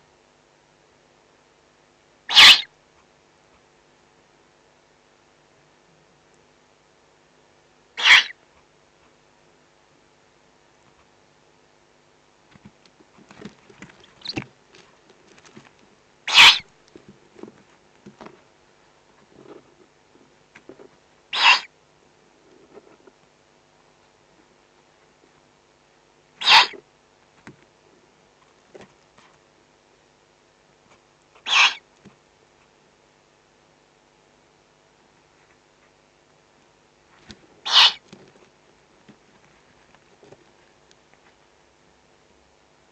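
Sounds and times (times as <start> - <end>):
owl chick rasping hiss: 2.2 - 2.7, 8.0 - 8.4, 13.4 - 14.5, 16.2 - 16.7, 21.3 - 21.8, 26.4 - 26.9, 30.9 - 31.9, 37.6 - 38.2.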